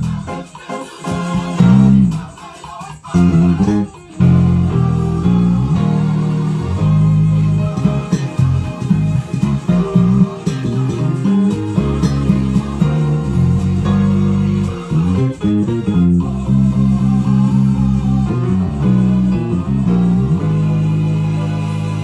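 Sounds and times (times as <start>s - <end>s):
electric bass guitar melody: 0.0s - 0.4s, 1.5s - 2.3s, 3.1s - 22.0s.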